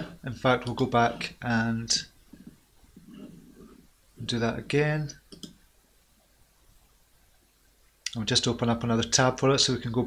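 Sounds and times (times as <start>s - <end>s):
computer mouse clicks: 5.3s - 5.6s.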